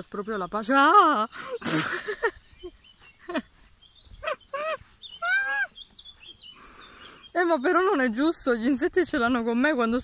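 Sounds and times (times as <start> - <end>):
faint bird chirps: 0.0 - 10.0
woman yelping and squealing: 4.2 - 5.8.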